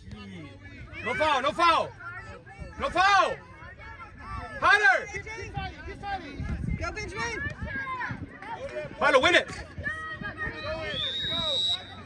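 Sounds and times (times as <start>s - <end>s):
spectators' voices: 0.0s - 12.0s
referee's whistle: 10.8s - 12.0s.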